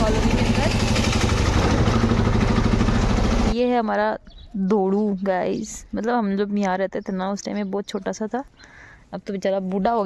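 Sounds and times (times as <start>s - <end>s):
small vehicle engine running: 0.0s - 3.6s
road noise: 0.0s - 7.0s.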